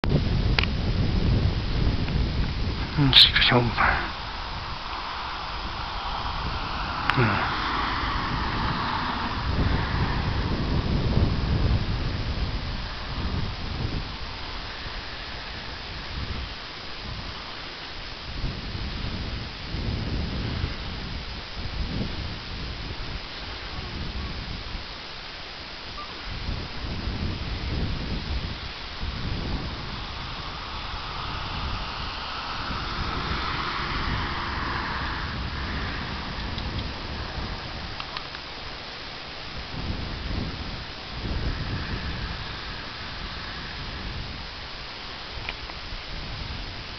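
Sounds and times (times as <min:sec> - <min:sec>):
wind buffeting microphone: 0:00.0 - 0:46.9.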